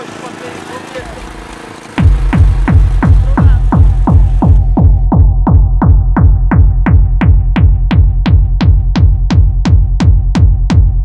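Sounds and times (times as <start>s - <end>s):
deep bass drone: 0.9s - 11.0s
pounding kick drum: 2.0s - 11.0s.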